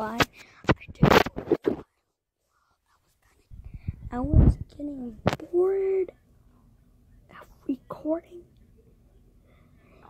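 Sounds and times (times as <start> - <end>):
breathing: 0.3 - 0.6, 3.6 - 4.1, 9.4 - 10.0
boy whispering: 7.3 - 8.5.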